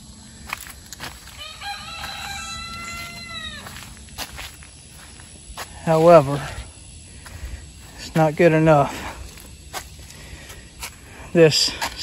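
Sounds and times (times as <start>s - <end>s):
long pitched animal call: 1.3s - 4.0s.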